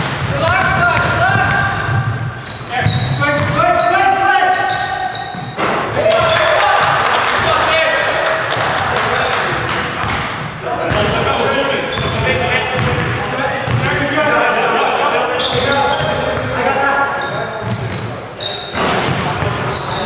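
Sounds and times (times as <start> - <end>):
shoes squeaking: 0.0 - 6.7, 9.1 - 20.0
players calling out: 0.0 - 20.0
basketball bouncing on wooden floor: 8.5 - 11.2, 12.0 - 13.9.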